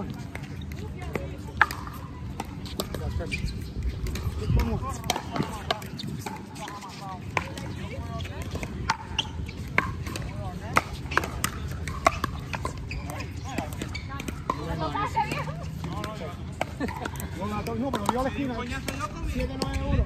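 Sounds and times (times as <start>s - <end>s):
faint voices: 0.0s - 20.0s
pickleball paddles hitting ball: 0.2s - 19.8s.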